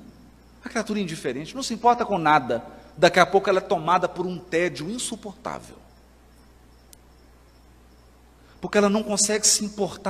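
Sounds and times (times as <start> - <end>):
faint high-pitched chirping: 0.0 - 10.0
steady low hum: 0.0 - 10.0.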